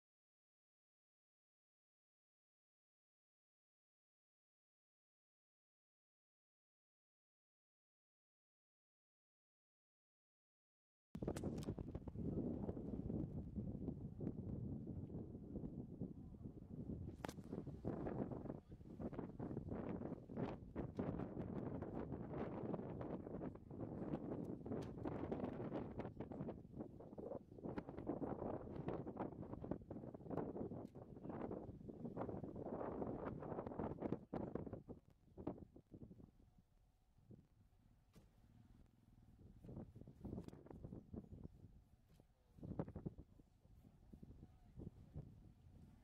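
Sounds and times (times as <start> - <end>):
crackles: 11.2 - 12.2, 17.1 - 17.9
wind buffeting microphone: 11.2 - 36.6, 39.3 - 41.9, 42.5 - 46.0.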